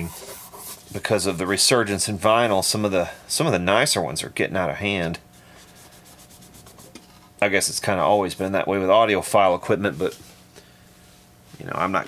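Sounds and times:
cloth rubbing on metal: 0.0s - 1.4s, 5.5s - 7.0s.

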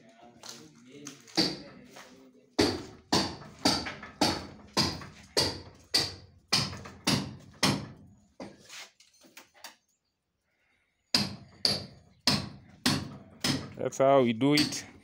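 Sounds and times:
hammer blows ringing: 14.4s - 14.9s.

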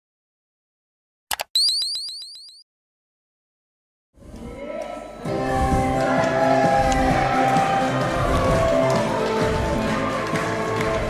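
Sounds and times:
electronic rising chirps: 1.5s - 2.6s
music: 4.2s - 11.0s
crowd noise: 4.3s - 11.0s.

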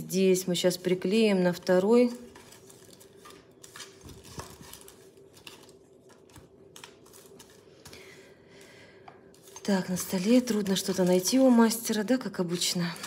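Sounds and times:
faint steady hum: 0.0s - 13.0s
paper rustling: 2.0s - 8.1s.

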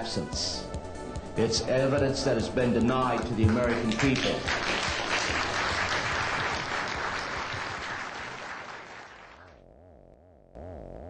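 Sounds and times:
audience applauding: 3.1s - 9.6s.

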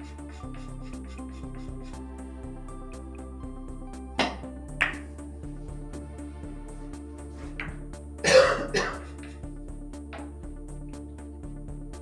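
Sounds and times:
electronic music with beat: 0.0s - 12.0s
person clearing throat: 8.2s - 9.2s.

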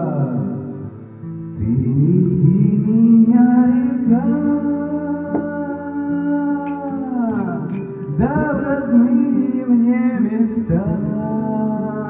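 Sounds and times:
man singing into microphone: 0.0s - 0.9s, 1.5s - 12.0s
karaoke backing track: 0.0s - 12.0s.

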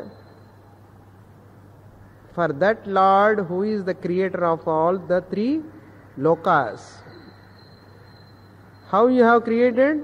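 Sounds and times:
thin high whine: 0.0s - 1.8s, 4.3s - 10.0s
recording hiss: 0.0s - 10.0s.

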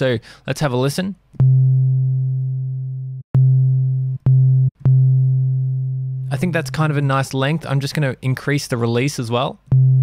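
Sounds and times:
sine bass notes: 1.4s - 6.4s, 9.7s - 10.0s.

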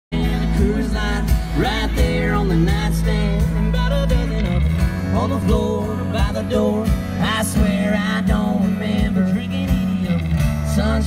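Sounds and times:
live country band playing: 0.1s - 11.0s
man singing lead vocal: 0.1s - 11.0s.

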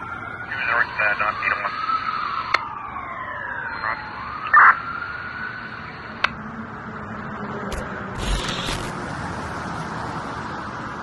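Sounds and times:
sharp clicks: 7.7s - 9.1s.

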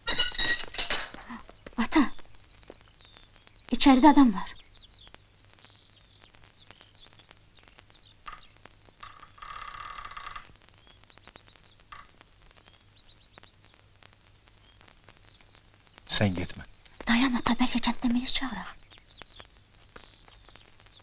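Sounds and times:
small bird chirping: 0.0s - 21.0s
faint clicks: 1.1s - 21.0s.

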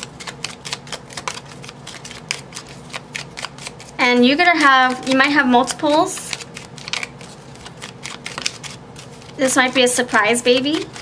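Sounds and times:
cards shuffling: 0.0s - 11.0s.

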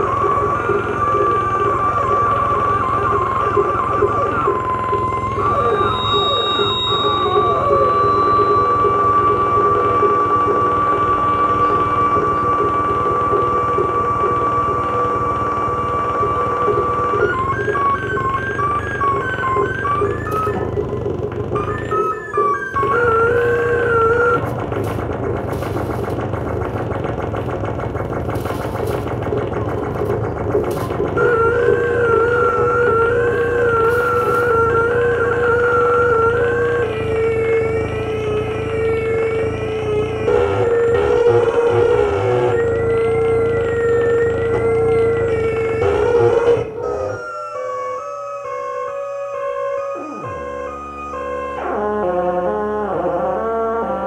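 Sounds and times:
dense low rumble: 0.0s - 47.3s
steady held electronic tone: 0.0s - 49.2s
warbling siren-like tones: 0.0s - 54.0s.

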